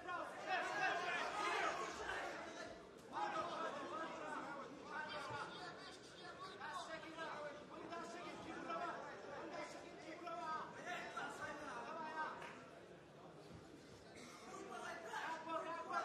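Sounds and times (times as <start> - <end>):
voices shouting and talking: 0.0 - 12.5.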